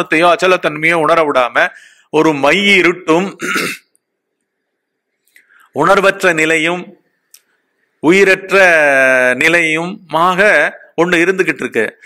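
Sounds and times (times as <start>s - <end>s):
man talking: 0.0s - 3.7s, 5.8s - 7.0s, 8.0s - 12.0s.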